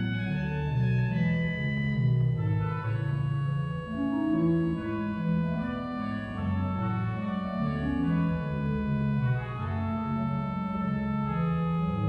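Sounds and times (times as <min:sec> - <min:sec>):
pipe organ playing: 0:00.0 - 0:12.0.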